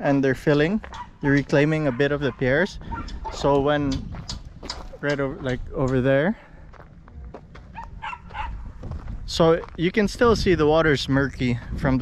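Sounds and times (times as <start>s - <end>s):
wind rumbling on microphone: 0.0s - 12.0s
footsteps on gravel: 0.6s - 5.8s, 6.4s - 10.4s
distant dog barking: 0.8s - 3.5s, 7.7s - 8.8s.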